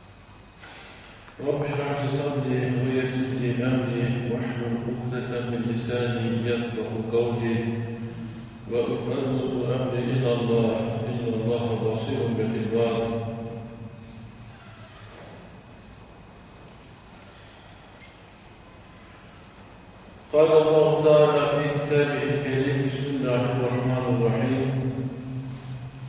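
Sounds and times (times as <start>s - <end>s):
man chanting recitation: 1.4s - 13.9s, 20.3s - 25.8s.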